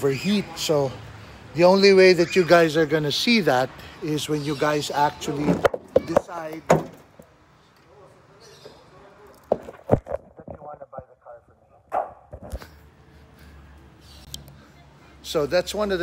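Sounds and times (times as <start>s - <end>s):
car hood knocks and thumps: 5.4s - 7.0s.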